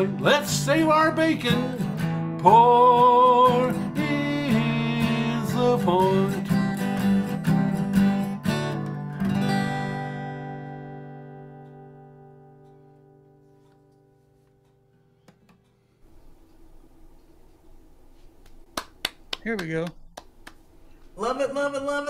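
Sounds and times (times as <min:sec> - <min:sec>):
acoustic guitar strumming: 0:00.0 - 0:15.2.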